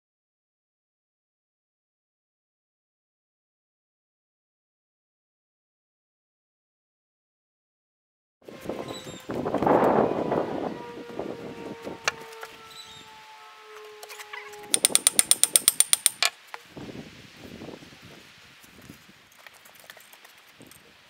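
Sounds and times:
ratchet wrench clicks: 14.7s - 16.3s.

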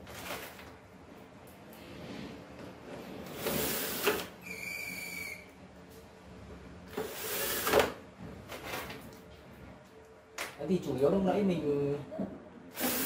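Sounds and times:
brief high squeal: 4.4s - 5.5s.

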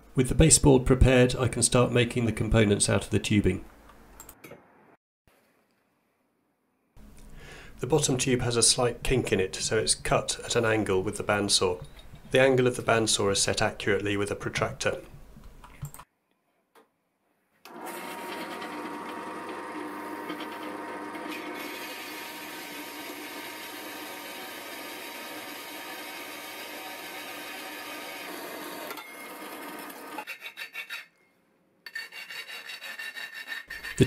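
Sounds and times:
bandsaw cutting steel tube: 17.7s - 31.2s, 31.9s - 34.0s
hand file rasping metal: 30.2s - 31.2s, 31.9s - 34.0s.

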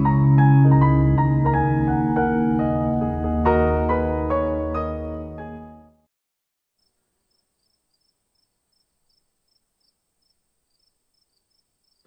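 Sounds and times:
faint insects chirping: 6.8s - 12.0s.

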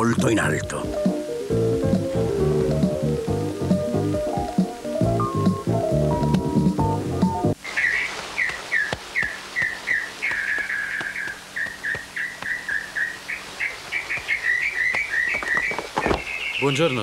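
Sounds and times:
background music: 0.0s - 7.6s
bird chirping falling notes: 7.6s - 17.0s.

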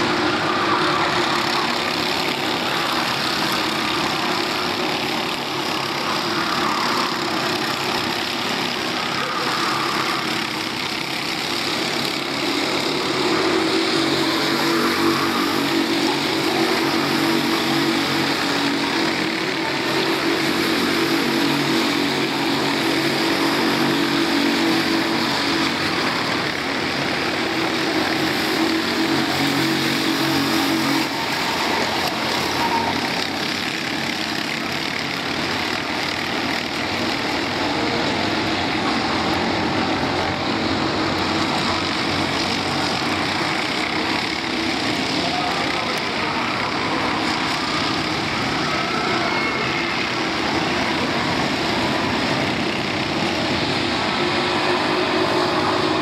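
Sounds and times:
kart engines droning: 0.0s - 56.0s.

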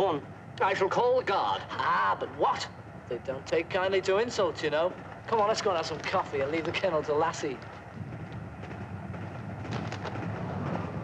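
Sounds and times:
railway carriage rumbling: 0.0s - 11.0s.

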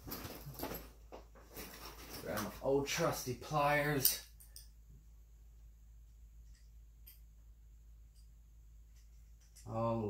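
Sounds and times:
tools rustling and clicking: 0.0s - 2.7s, 4.0s - 4.8s, 8.9s - 9.7s.

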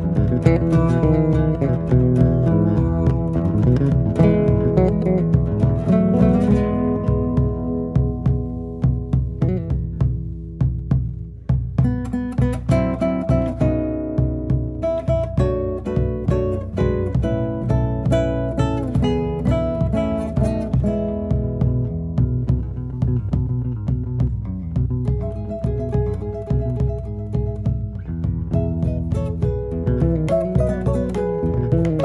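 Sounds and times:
acoustic guitar folk melody: 0.0s - 32.0s
low bass line: 0.0s - 32.0s.

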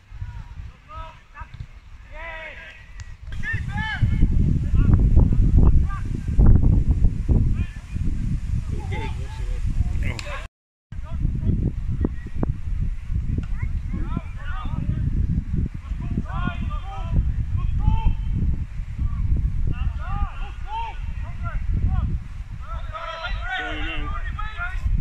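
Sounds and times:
wind on the microphone: 0.0s - 25.0s
footballers shouting: 0.3s - 4.4s, 15.9s - 18.4s, 19.8s - 24.8s.

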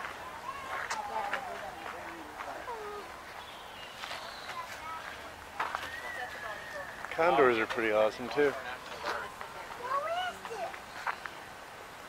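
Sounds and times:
bird whistled calls: 5.7s - 7.3s.

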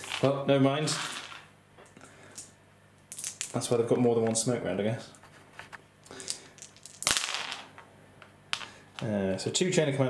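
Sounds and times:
dice clattering on a mat: 0.0s - 0.3s, 0.9s - 1.5s, 3.1s - 3.6s, 6.1s - 7.8s, 8.5s - 9.1s.

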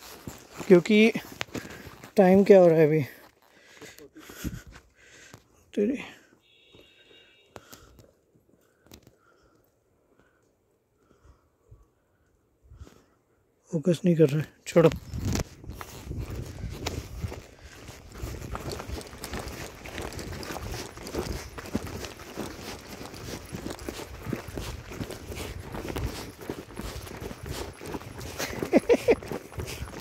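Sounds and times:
footsteps on dirt trail: 0.0s - 10.4s, 14.8s - 30.0s.

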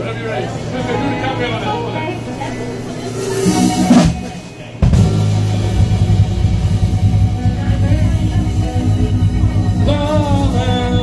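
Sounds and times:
live band playing: 0.4s - 11.0s.

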